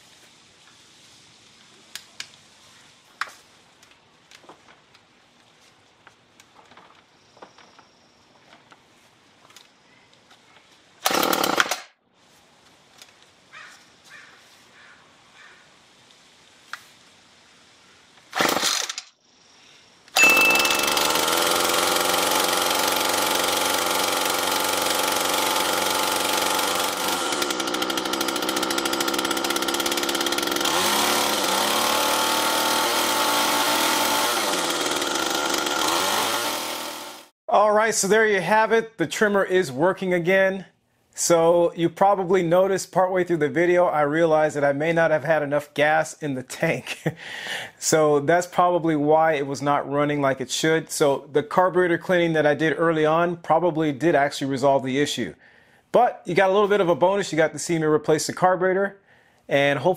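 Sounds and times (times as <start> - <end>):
string trimmer engine running: 11.0 - 11.8, 18.4 - 19.0, 20.2 - 37.3.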